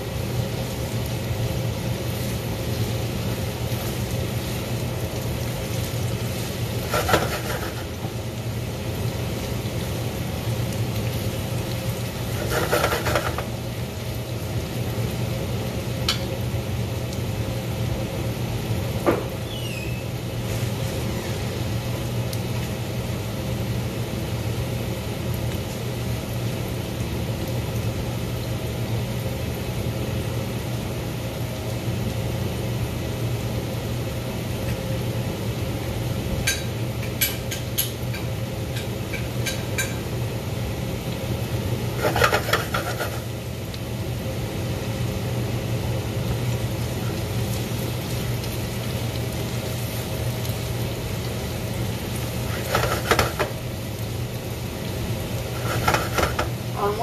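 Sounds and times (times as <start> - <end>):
vegetables sizzling in a pan: 0.0 - 57.0
utensil scraping in a pan: 6.3 - 8.1, 12.2 - 13.5, 41.9 - 43.3, 52.2 - 53.6, 55.4 - 56.6.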